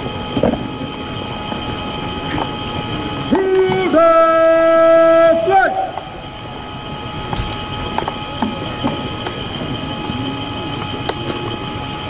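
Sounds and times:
thin high-pitched whine: 0.0 - 12.0
faint scattered voices: 7.7 - 12.0.

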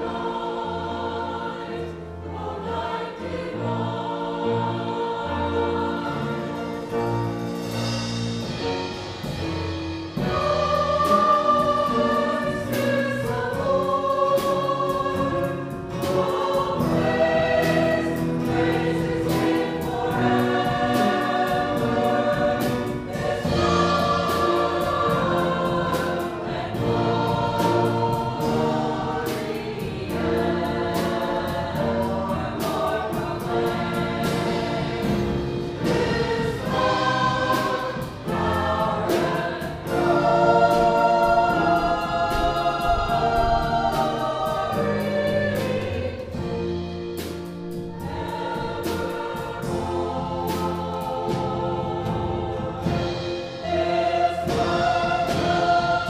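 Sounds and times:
choir singing: 0.0 - 56.0
instrumental accompaniment: 0.0 - 56.0.

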